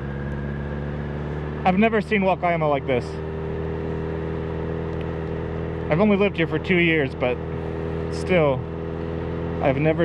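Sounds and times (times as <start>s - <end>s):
motorcycle engine cruising: 0.0s - 10.0s
wind and road noise: 0.0s - 10.0s.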